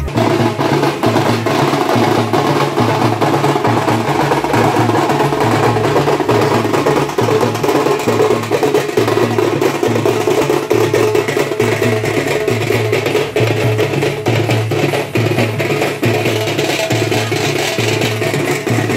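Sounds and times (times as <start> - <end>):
drums beating fast rhythm: 0.0 - 18.9.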